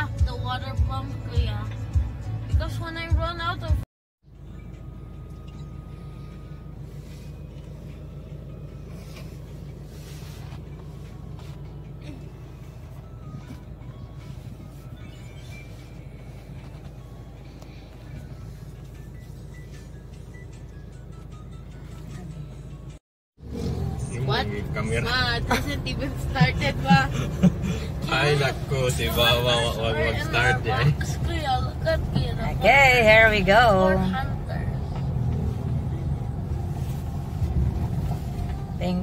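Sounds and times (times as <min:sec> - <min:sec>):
music from car stereo: 0:00.0 - 0:23.0, 0:24.0 - 0:34.7, 0:35.9 - 0:39.0
diesel engine idling: 0:00.0 - 0:39.0.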